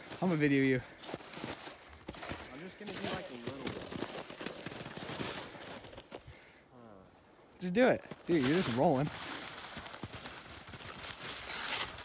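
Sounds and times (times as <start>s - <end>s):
snow crunching: 0.0s - 12.0s.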